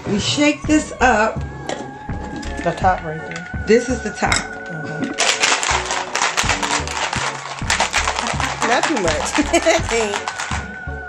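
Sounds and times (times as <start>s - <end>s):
background music with bass: 0.0s - 11.0s
ice rattling in shaken tumbler: 2.3s - 3.6s, 4.6s - 10.8s.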